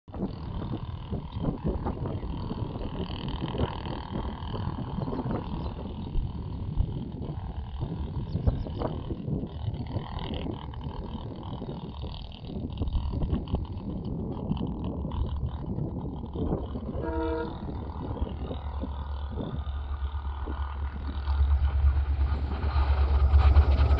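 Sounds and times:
wind buffeting microphone: 0.1 - 23.9.

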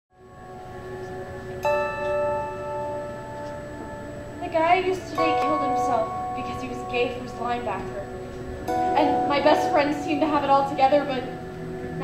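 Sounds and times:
soft bell-like chords: 0.2 - 12.0.

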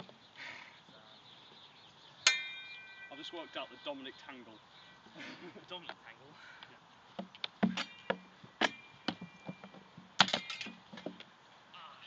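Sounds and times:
swords and shields clashing: 7.6 - 9.6, 10.2 - 11.1.

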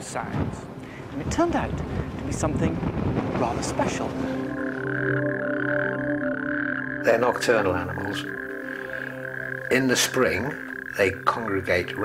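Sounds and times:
soft music drone: 3.7 - 12.0
toads calling in chorus: 4.4 - 12.0.

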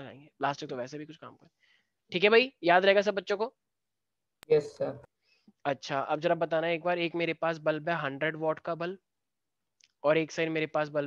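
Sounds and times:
man speaking: 4.4 - 5.1.

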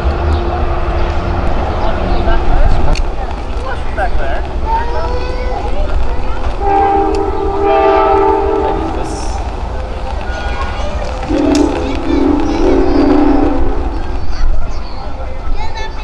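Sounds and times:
locomotive air horn blasts: 6.6 - 9.4, 11.3 - 14.2.

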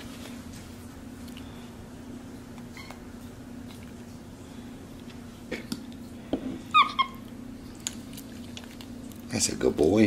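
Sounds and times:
steady low hum: 0.0 - 10.0
monkey squeaking: 6.7 - 7.3.

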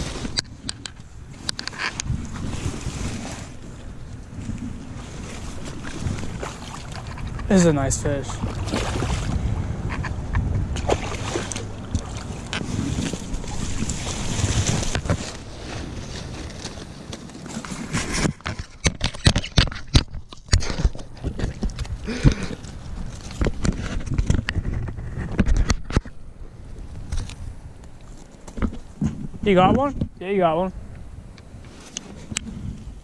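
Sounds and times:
water splashing and sloshing: 0.0 - 26.2
dry reeds rustling: 11.6 - 18.8, 20.5 - 24.3.

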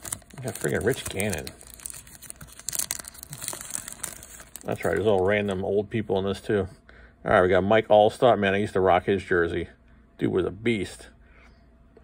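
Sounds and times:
foil wrapper crinkling: 0.0 - 5.6.

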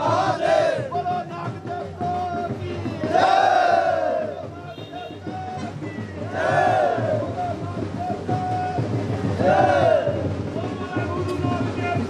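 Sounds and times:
crowd of men shouting: 0.0 - 12.0.

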